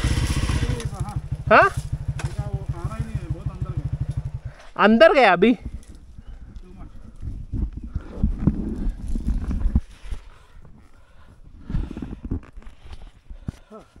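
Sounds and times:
camera bumping and rustling: 7.4s - 10.4s, 11.8s - 13.6s.

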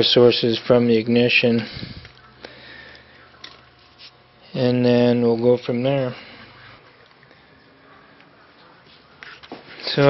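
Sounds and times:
low steady hum: 0.0s - 10.0s
faint nasal breath: 1.6s - 3.3s.

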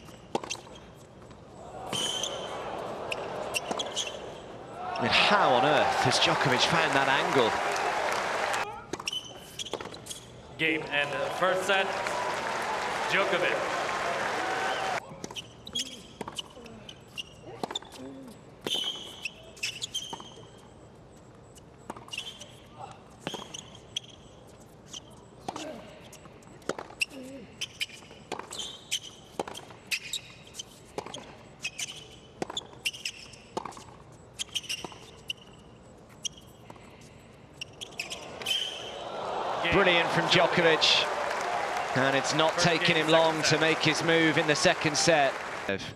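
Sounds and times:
sneakers squeaking on court: 0.0s - 5.8s, 8.6s - 10.5s, 15.1s - 39.0s
crowd applause: 5.0s - 8.6s, 11.0s - 15.0s, 38.9s - 45.9s.

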